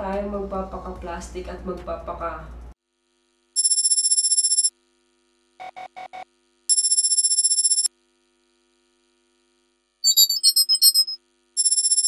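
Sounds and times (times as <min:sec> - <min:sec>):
electronic telephone ringing tone: 0:03.6 - 0:04.7, 0:06.7 - 0:07.9, 0:10.0 - 0:12.0
short quick beeps: 0:10.0 - 0:12.0.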